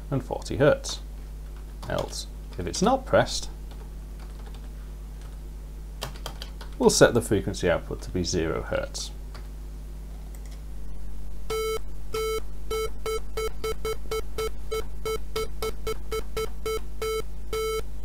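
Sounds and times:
synthesizer square wave beeps: 11.5s - 17.8s.

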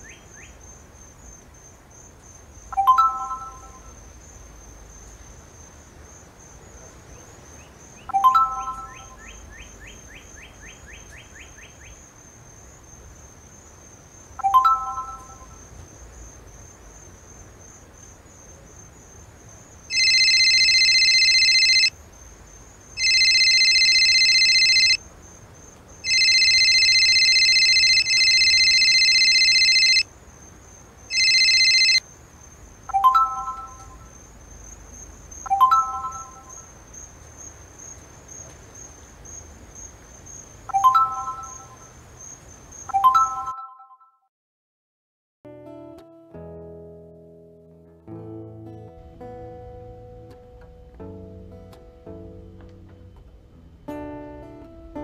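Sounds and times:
crickets chirring: 0.0s - 43.5s
electronic phone ringtone: 2.8s - 3.9s, 8.1s - 9.2s, 14.4s - 15.6s, 19.9s - 21.9s, 23.0s - 25.0s, 26.0s - 30.1s, 31.1s - 32.0s, 32.9s - 34.1s, 35.5s - 36.7s, 40.7s - 41.9s, 42.9s - 44.2s
phone notification chime: 2.8s - 3.9s, 8.1s - 9.2s, 14.4s - 15.6s, 32.9s - 34.0s, 35.5s - 36.6s, 40.7s - 41.8s, 42.9s - 44.1s.

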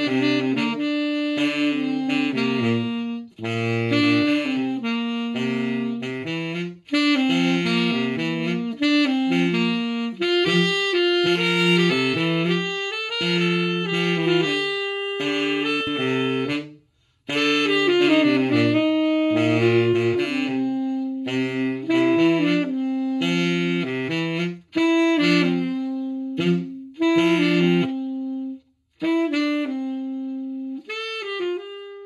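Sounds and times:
saxophone duet: 0.0s - 32.0s.

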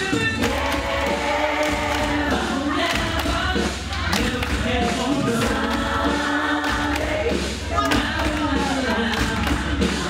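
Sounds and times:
steady bass line: 0.0s - 10.0s
voices singing together: 0.0s - 10.0s.

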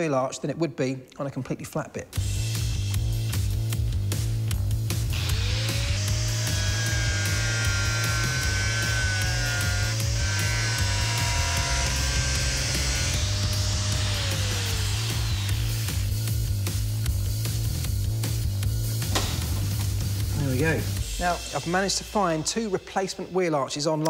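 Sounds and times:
background music with steady beat: 2.1s - 24.0s
angle grinder cutting steel: 5.0s - 16.4s.

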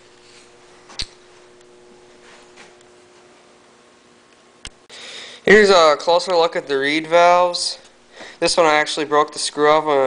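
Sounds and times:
faint steady hum: 0.0s - 10.0s
sharp click: 0.9s - 1.2s.

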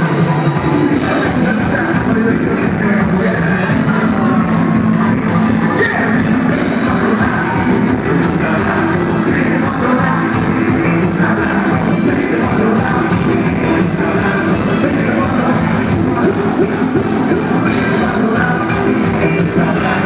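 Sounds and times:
loud live band music: 0.0s - 20.0s
vocalists singing: 0.0s - 20.0s.

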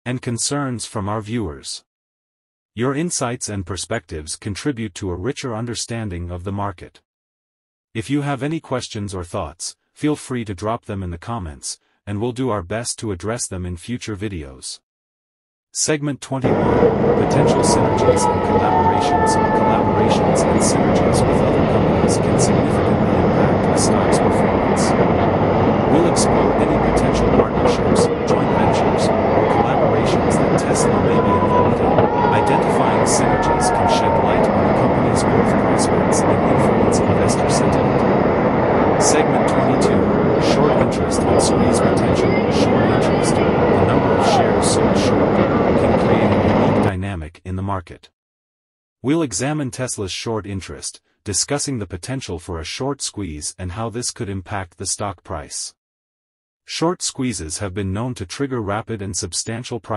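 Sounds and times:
crowd chatter: 16.4s - 25.1s, 25.8s - 38.1s, 38.9s - 46.8s
traffic noise: 16.4s - 36.0s.

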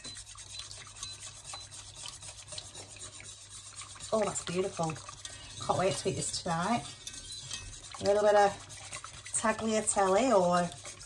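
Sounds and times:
whisk scraping a pot: 0.0s - 11.0s.

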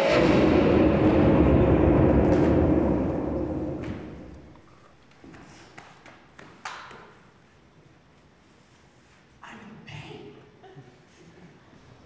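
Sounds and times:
explosion with deep rumble: 0.0s - 4.6s.

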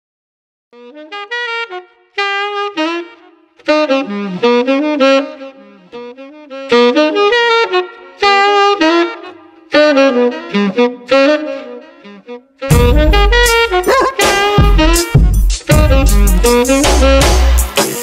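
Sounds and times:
jazzy saxophone melody: 0.8s - 18.0s.

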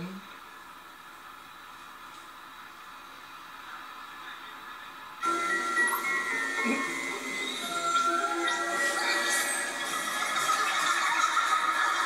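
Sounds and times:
low steady background hiss: 0.0s - 12.0s.

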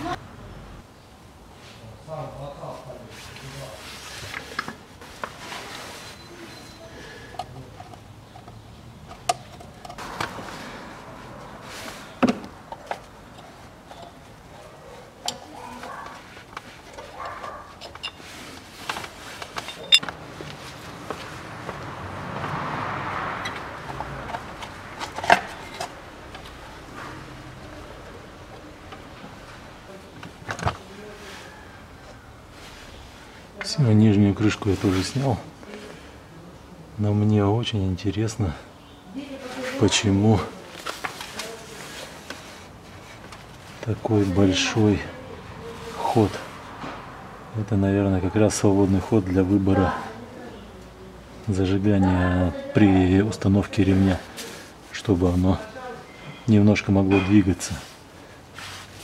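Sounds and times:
tools clicking and tapping on engine: 7.3s - 10.4s, 23.4s - 26.6s.

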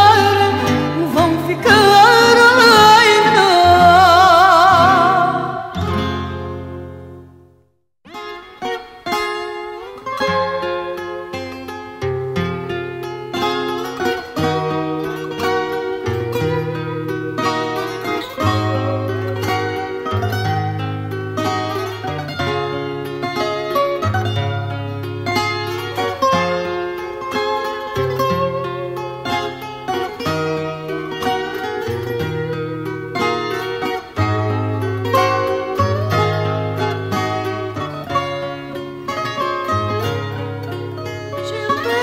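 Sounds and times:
guitar melody: 0.0s - 42.0s
strummed guitar chords: 0.0s - 42.0s.

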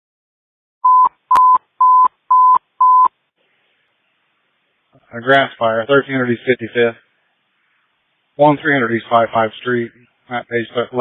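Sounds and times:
radio alert tone beeps: 0.8s - 3.1s.

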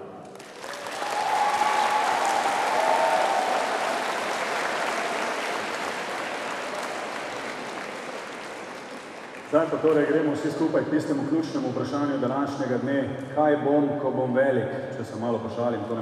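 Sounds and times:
audience applauding: 0.2s - 10.0s.

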